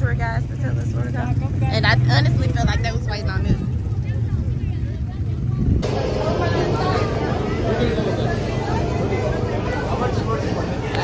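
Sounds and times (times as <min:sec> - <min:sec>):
woman's voice: 0:00.0 - 0:03.7
faint voices: 0:00.0 - 0:11.0
low outdoor rumble: 0:00.0 - 0:11.0.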